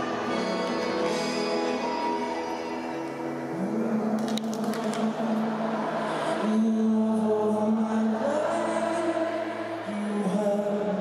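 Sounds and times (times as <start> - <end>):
acoustic guitar: 0.0 - 11.0
crowd singing along: 0.0 - 11.0.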